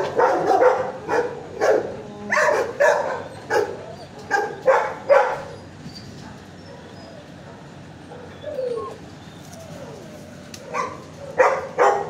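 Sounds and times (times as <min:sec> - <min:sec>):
dogs barking: 0:00.0 - 0:10.0, 0:10.6 - 0:12.0
dog whining: 0:02.1 - 0:11.6.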